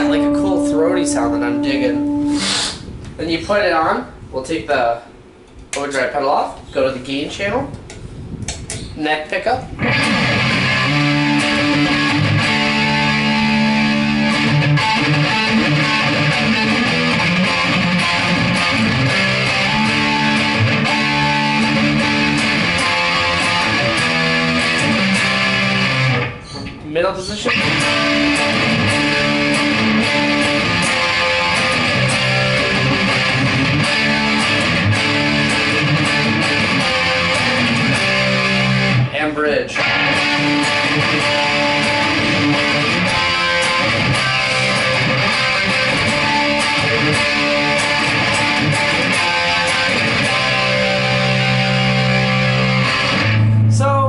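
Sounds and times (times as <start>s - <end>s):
driven electric guitar chords: 0.0s - 3.2s, 9.8s - 26.4s, 27.5s - 39.2s, 39.8s - 54.0s.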